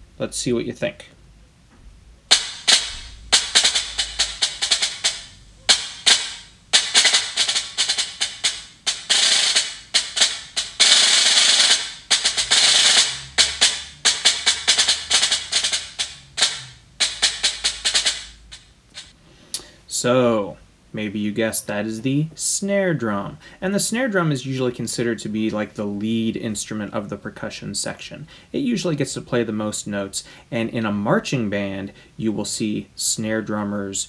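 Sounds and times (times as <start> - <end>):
snare drum strokes and rolls: 2.3 - 19.2.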